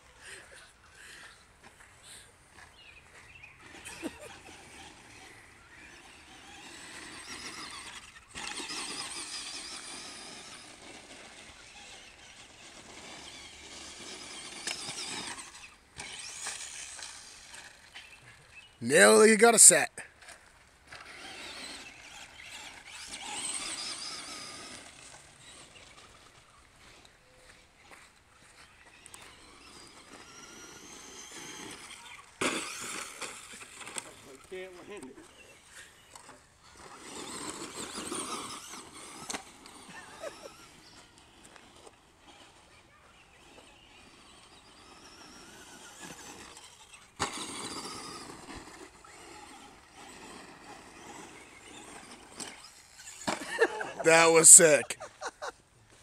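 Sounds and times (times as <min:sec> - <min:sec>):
tyres crunching over dirt: 0:01.6 - 0:18.8, 0:20.2 - 0:54.9
electric motor whining: 0:03.3 - 0:18.2, 0:20.9 - 0:27.0.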